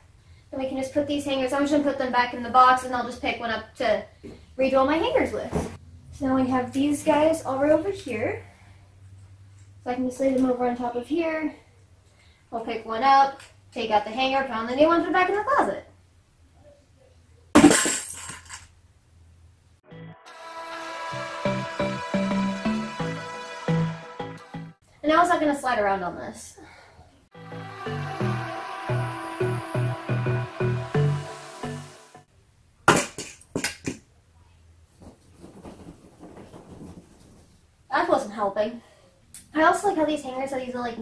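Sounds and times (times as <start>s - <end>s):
clothes rustling: 5.2s - 5.8s, 34.8s - 37.8s
crash with shattering: 17.6s - 18.6s
background music with beat: 19.9s - 24.8s, 27.4s - 32.3s.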